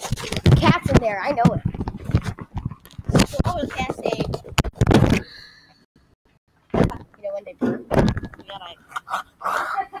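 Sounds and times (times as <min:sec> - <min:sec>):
boys' voices: 0:00.5 - 0:01.6, 0:03.2 - 0:04.3, 0:09.5 - 0:10.0
sharp thumps: 0:06.7 - 0:08.6.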